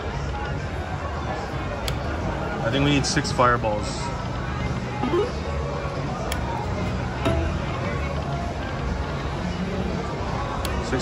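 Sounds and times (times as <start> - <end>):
casino background hum: 0.0 - 11.0.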